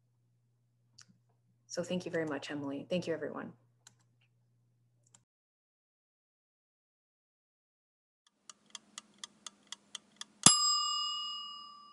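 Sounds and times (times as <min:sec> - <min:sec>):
stopwatch ticking: 0:08.3 - 0:10.7
bright bell ding: 0:10.4 - 0:11.9.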